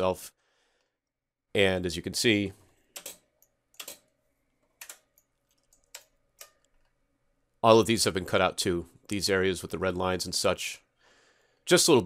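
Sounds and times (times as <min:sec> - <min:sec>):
computer mouse clicks: 0:03.0 - 0:04.1, 0:04.7 - 0:06.8.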